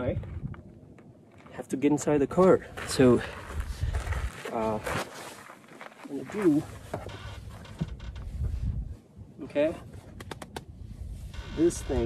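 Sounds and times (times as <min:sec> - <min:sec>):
wind rumble on microphone: 0:00.0 - 0:01.3, 0:01.9 - 0:04.8, 0:06.6 - 0:12.0.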